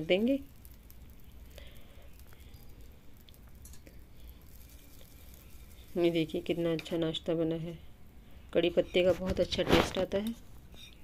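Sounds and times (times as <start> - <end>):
cakes sizzling in oil: 0.0 - 11.0.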